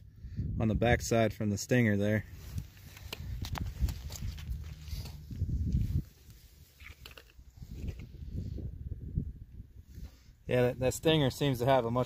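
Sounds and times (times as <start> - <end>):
low rumble: 2.2 - 6.7.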